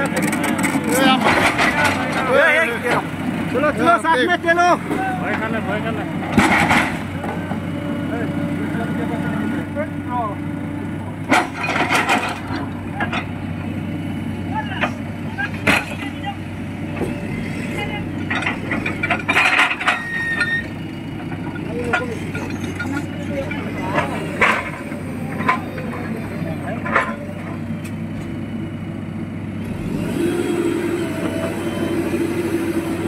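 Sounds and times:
excavator diesel engine running: 0.0s - 33.0s.

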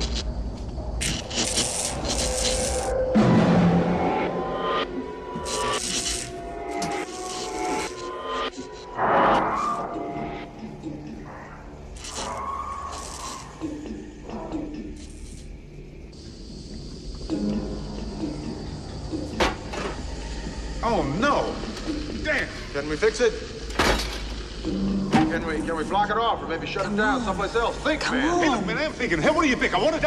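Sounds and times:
film music: 0.0s - 30.0s
short hissy bursts: 5.4s - 8.2s.

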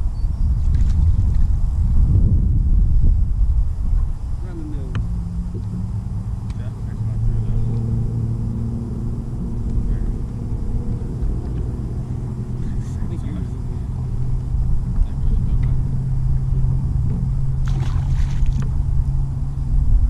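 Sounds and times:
boat motor humming: 3.1s - 20.0s.

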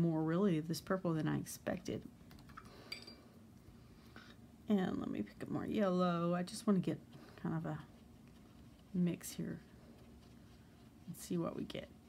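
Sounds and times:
paintbrush clinking on ceramic: 2.9s - 3.2s.

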